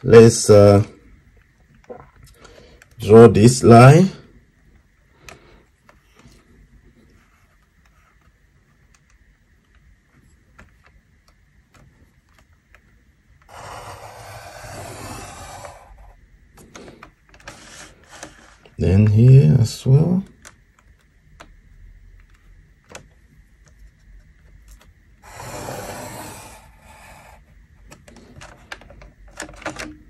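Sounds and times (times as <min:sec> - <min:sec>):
pencil scratching on paper: 0:13.5 - 0:16.1, 0:25.3 - 0:27.4.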